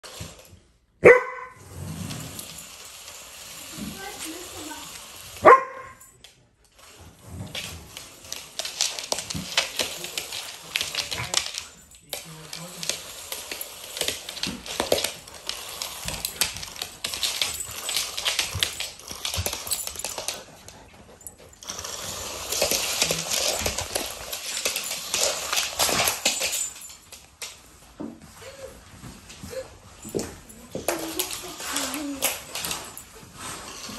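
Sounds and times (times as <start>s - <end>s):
dog claws clicking on floor: 0.0s - 28.4s, 29.0s - 33.9s
dog barking: 1.0s - 1.6s, 5.4s - 6.0s.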